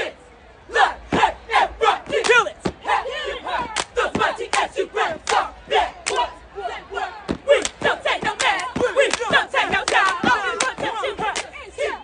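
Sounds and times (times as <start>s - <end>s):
cheer squad chanting: 0.0s - 12.0s.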